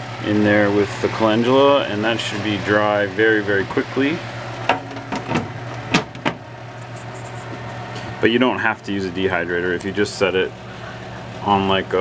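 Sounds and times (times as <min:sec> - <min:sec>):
food dehydrator fan humming: 0:00.0 - 0:12.0
trays knocking and clicking: 0:04.6 - 0:06.5.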